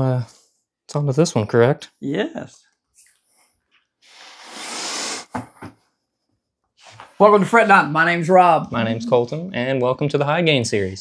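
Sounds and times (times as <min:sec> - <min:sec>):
breathy hiss: 0:03.4 - 0:05.3
short low sounds: 0:08.3 - 0:09.8.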